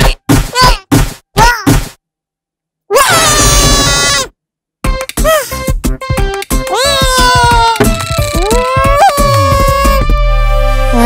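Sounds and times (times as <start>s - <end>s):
cartoon character yelling: 2.9s - 4.3s, 6.7s - 7.8s, 8.4s - 10.0s.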